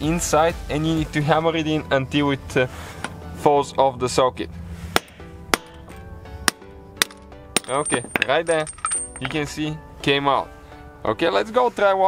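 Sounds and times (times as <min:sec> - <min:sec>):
background music: 0:00.0 - 0:12.0
hammer hitting steel bolt: 0:05.0 - 0:09.4.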